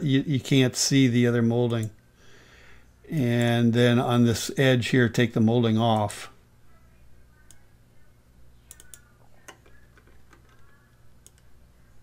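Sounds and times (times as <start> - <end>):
low steady hum: 0.0 - 12.0
computer mouse clicks: 8.7 - 11.5.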